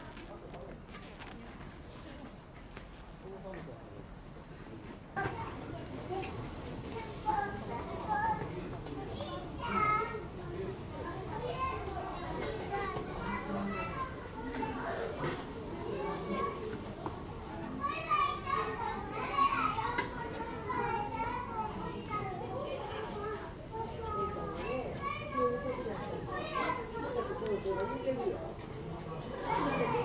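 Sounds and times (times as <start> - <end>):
children chattering: 4.7 - 30.0.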